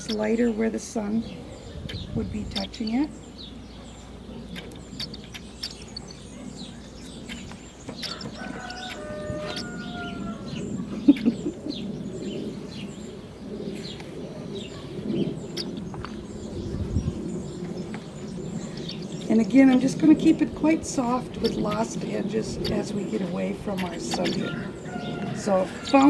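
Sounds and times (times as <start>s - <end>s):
small birds chirping: 0.0s - 26.0s
rooster crowing: 8.0s - 10.6s, 24.4s - 26.0s.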